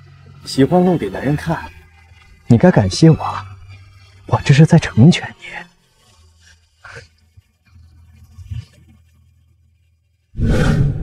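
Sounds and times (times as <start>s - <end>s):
loud rushing burst: 10.4s - 11.0s.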